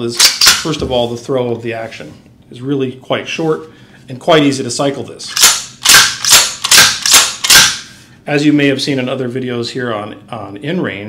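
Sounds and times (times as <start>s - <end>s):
rifle lever metallic clacks: 5.4s - 7.8s.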